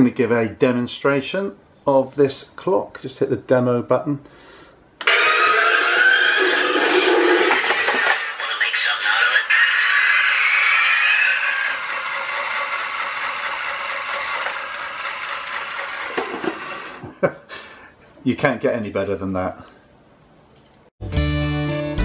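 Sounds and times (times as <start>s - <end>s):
cartoon character voice from speaker: 8.2s - 11.7s.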